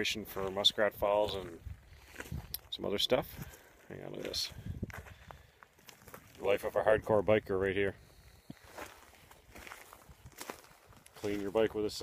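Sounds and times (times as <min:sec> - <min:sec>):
footsteps on gravel: 0:00.2 - 0:06.9, 0:08.0 - 0:12.0.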